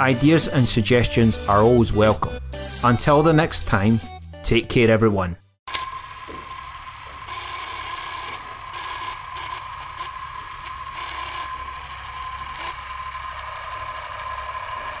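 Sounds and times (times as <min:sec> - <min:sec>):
film projector clattering: 0:05.7 - 0:15.0.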